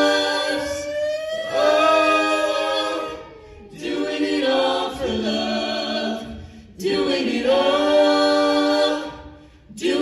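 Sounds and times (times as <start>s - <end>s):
a cappella group singing: 0.0s - 10.0s.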